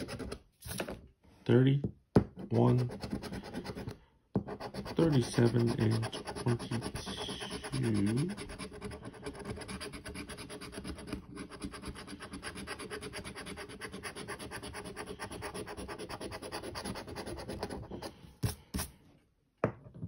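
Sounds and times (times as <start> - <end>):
coin scraping scratch-off ticket: 5.0 - 8.5.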